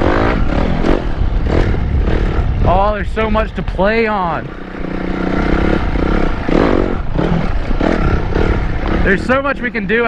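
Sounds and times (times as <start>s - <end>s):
dirt bike engine revving: 0.0s - 10.0s.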